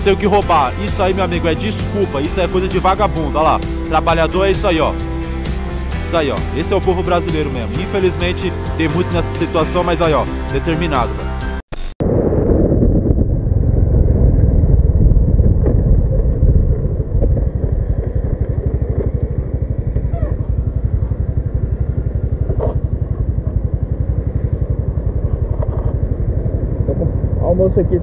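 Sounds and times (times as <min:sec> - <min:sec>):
motor scooter engine: 0:15.7 - 0:28.0.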